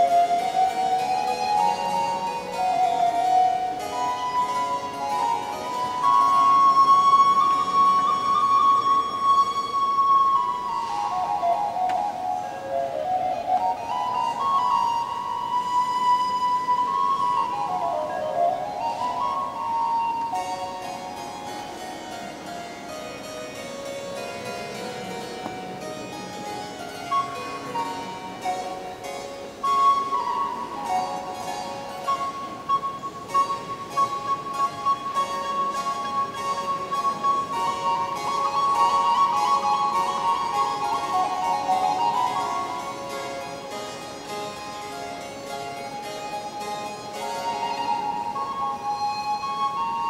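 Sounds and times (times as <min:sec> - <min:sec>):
flute melody: 0:00.0 - 0:50.0
harpsichord accompaniment: 0:00.0 - 0:50.0.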